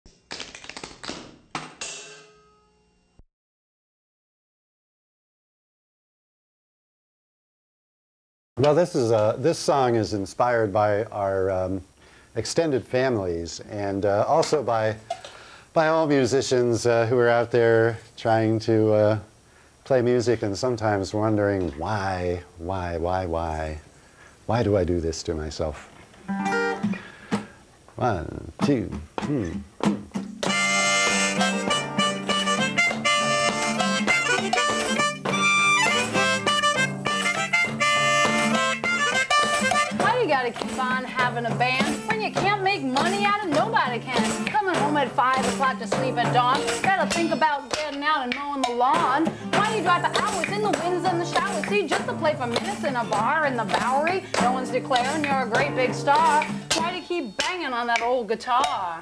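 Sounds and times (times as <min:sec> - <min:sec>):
acoustic guitar strums: 0:14.2 - 0:15.6, 0:25.8 - 0:59.0.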